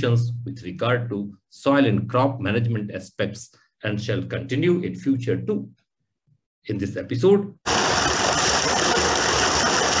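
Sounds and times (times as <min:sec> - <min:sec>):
pump engine running: 0:07.7 - 0:10.0
water gushing into channel: 0:07.7 - 0:10.0.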